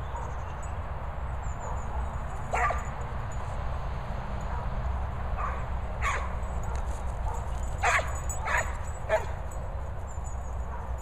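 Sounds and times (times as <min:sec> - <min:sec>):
dog barking high: 0:02.5 - 0:02.9, 0:05.4 - 0:09.4.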